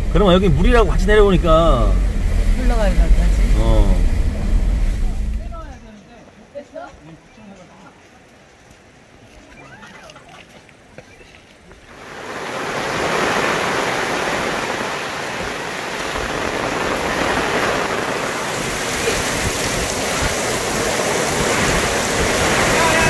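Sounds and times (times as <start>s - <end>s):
floodwater rushing: 0.0s - 5.9s, 8.0s - 23.0s.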